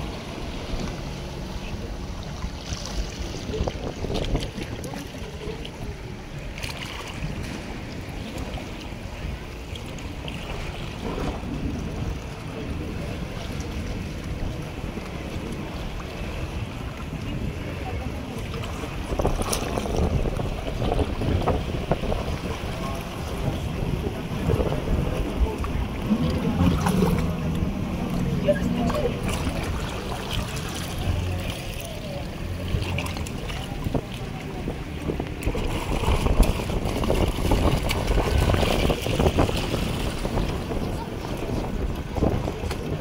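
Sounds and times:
water lapping: 0.0 - 43.0
wind buffeting microphone: 0.0 - 43.0.

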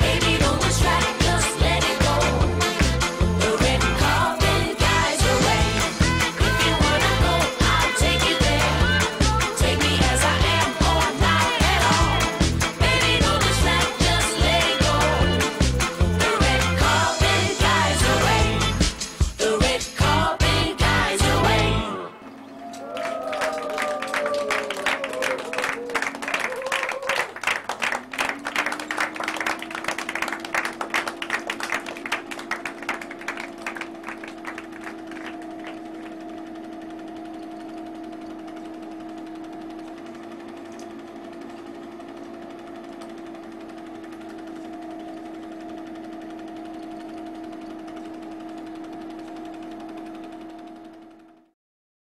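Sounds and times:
film projector ticking: 0.0 - 21.8, 28.3 - 51.5
projector motor hum: 0.0 - 51.5.

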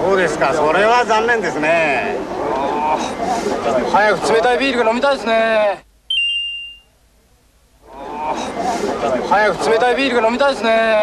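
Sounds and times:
high-pitched ding: 6.1 - 6.9.

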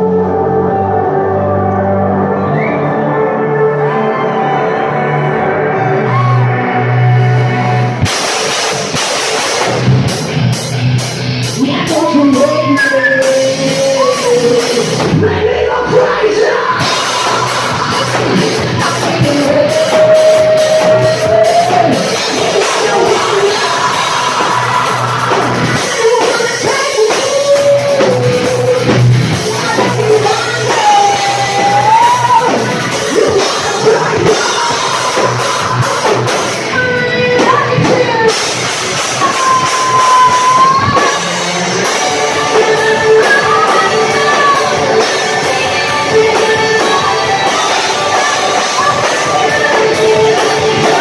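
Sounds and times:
rock band playing: 0.0 - 51.0
heavy drum beat: 7.9 - 51.0
woman singing into microphone: 11.6 - 51.0.

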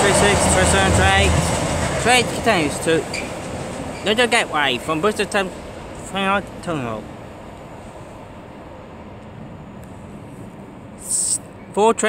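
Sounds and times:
outdoor rumble and hiss: 0.0 - 12.0.

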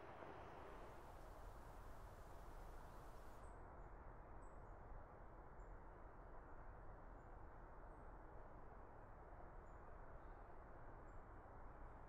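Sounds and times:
distant motorway traffic: 0.0 - 1.0.

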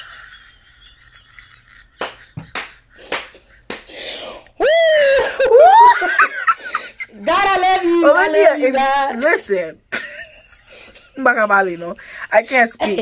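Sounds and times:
high-pitched swooping laugh: 0.0 - 3.6, 4.6 - 7.2
women laughing: 0.0 - 3.7, 4.6 - 13.0.

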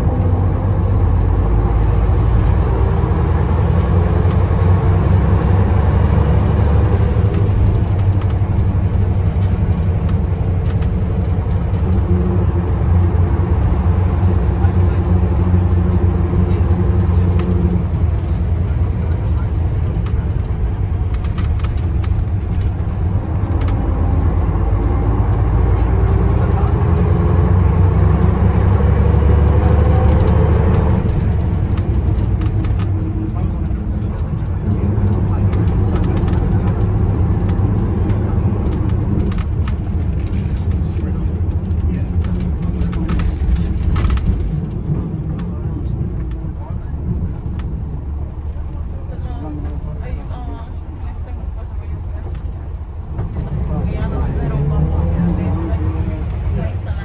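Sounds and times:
bus diesel engine accelerating: 0.0 - 57.0.

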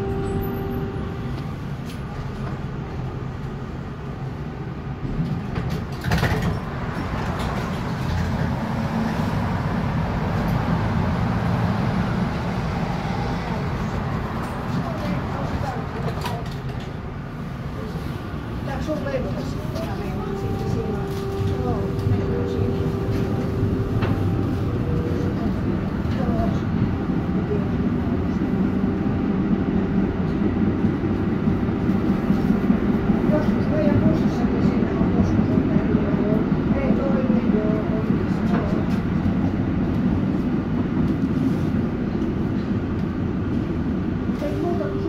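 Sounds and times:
tram wheels rumbling on rails: 0.0 - 45.0.

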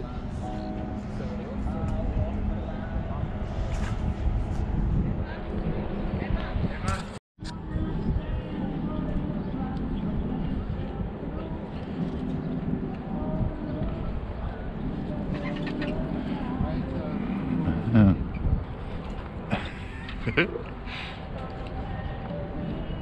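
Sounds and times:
low rumble: 0.0 - 19.8
indistinct voices: 0.0 - 23.0.

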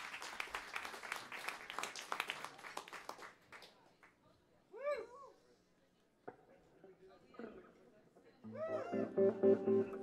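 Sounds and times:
bass guitar held notes: 8.5 - 10.0
electric guitar bending notes: 8.5 - 10.0.

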